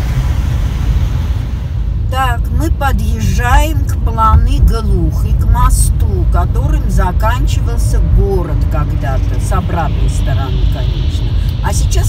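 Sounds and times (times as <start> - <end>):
road rumble inside car: 0.0 - 12.0.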